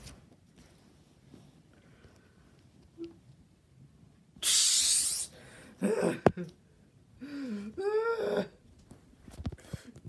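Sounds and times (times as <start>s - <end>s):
child making hissing sound: 4.4s - 5.4s.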